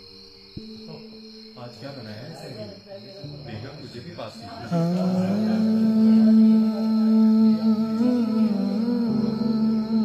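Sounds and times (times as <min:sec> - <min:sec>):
person humming a melody: 0:04.6 - 0:10.0.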